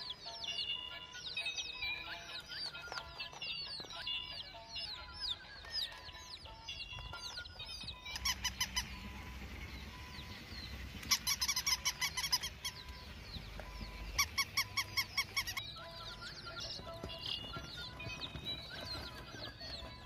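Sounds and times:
small birds chirping: 0.0s - 20.0s.

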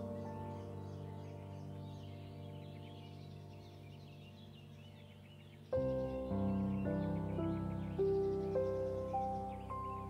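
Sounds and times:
birds chirping: 0.0s - 10.0s
calm new-age music: 0.0s - 10.0s.

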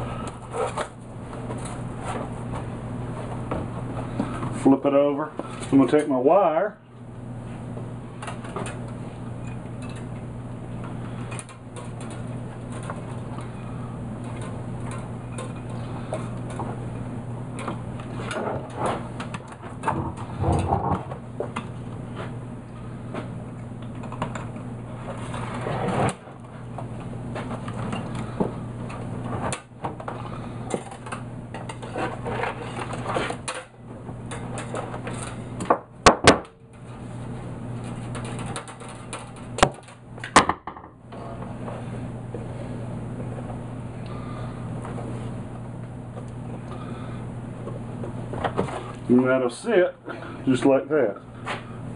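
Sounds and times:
steady low hum: 0.0s - 51.9s.

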